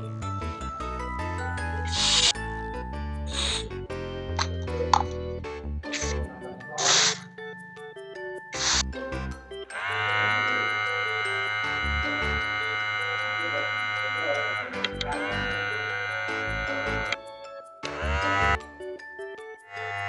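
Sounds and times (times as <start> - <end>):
toy electronic sound effects: 1.8 - 2.4, 3.3 - 3.7, 5.9 - 7.4, 8.5 - 8.9, 9.7 - 18.6, 19.6 - 20.0.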